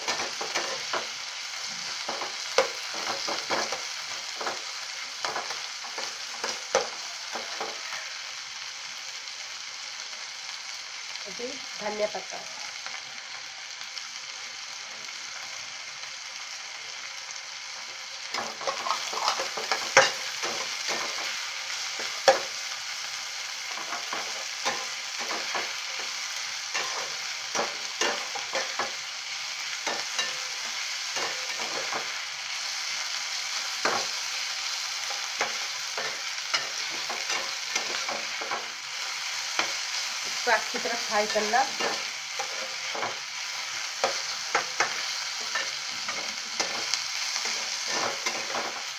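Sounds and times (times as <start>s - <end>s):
onion and tomato sizzling in oil: 0.0s - 48.9s
spatula scraping a pan: 18.4s - 22.6s.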